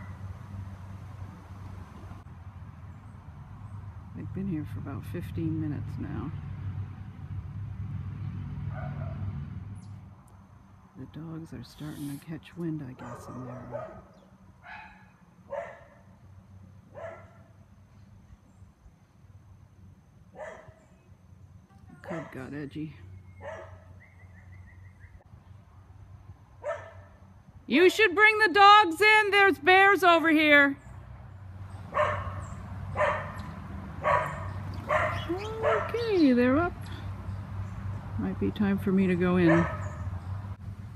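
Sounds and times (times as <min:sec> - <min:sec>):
dogs barking: 0:08.7 - 0:09.3, 0:13.0 - 0:16.0, 0:16.9 - 0:17.5, 0:20.4 - 0:20.8, 0:22.0 - 0:22.5, 0:23.4 - 0:24.0, 0:26.6 - 0:27.1, 0:31.9 - 0:36.2, 0:39.4 - 0:40.1.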